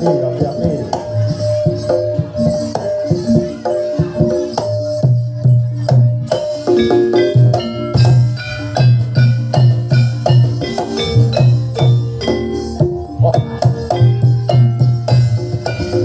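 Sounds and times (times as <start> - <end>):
ringing tuned percussion: 0.0 - 16.0.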